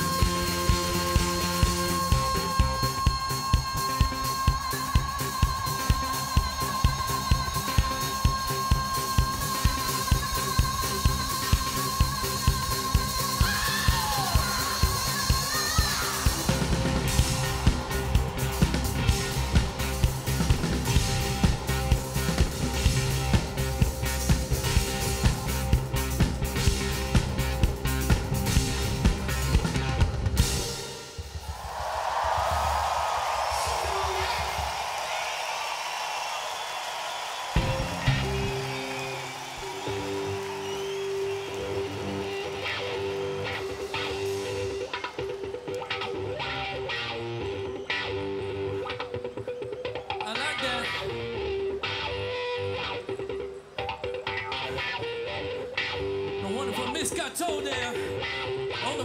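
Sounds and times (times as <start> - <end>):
electric guitar riff: 0.0 - 31.1, 37.6 - 59.0
crowd cheering: 0.0 - 59.0
rock band playing: 0.0 - 59.0.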